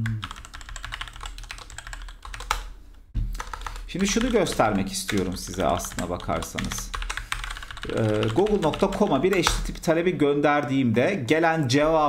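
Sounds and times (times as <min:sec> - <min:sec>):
computer keyboard typing: 0:00.0 - 0:02.7, 0:03.4 - 0:09.8.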